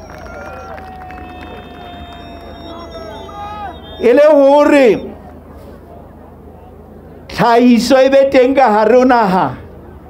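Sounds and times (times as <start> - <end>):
steady ringing tone: 0.0 - 5.2
faint background voices: 5.0 - 7.3.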